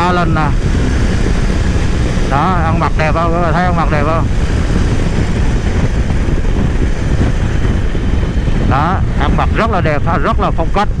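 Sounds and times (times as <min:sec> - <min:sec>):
motorcycle engine and road noise: 0:00.0 - 0:11.0
wind rush: 0:00.0 - 0:11.0.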